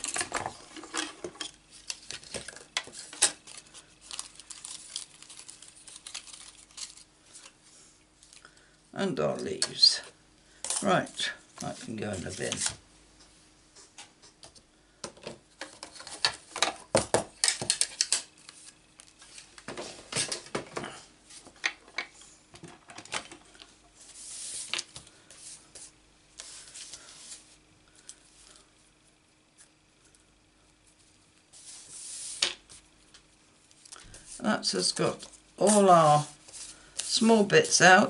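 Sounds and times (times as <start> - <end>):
paper rustling: 1.7 - 7.6.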